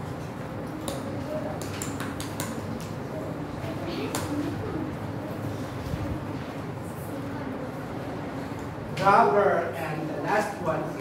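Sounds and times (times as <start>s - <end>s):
murmur of background voices: 0.0s - 11.0s
marker pen writing on whiteboard: 0.7s - 3.0s.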